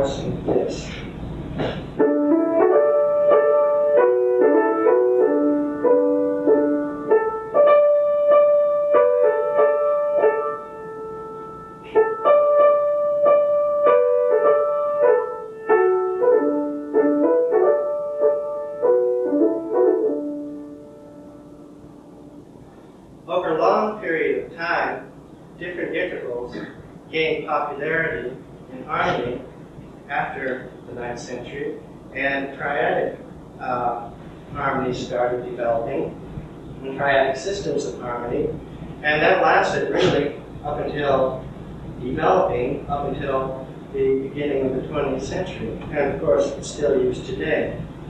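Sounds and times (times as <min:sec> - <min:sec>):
grand piano playing slow hymn: 0:01.9 - 0:22.6.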